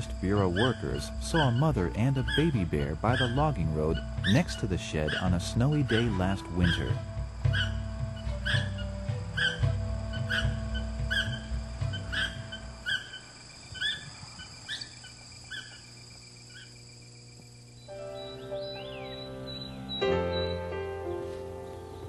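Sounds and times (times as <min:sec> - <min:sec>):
background music with low pulse: 0:00.0 - 0:14.7, 0:17.6 - 0:22.0
bird chirping: 0:00.0 - 0:16.9, 0:17.8 - 0:22.0.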